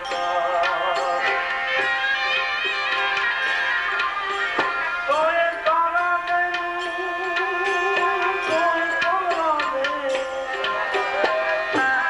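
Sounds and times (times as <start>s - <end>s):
harmonium chords: 0.0s - 12.0s.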